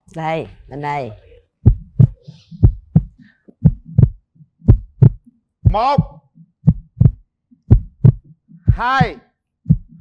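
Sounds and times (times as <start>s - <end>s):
heartbeat thumps: 1.3s - 10.0s.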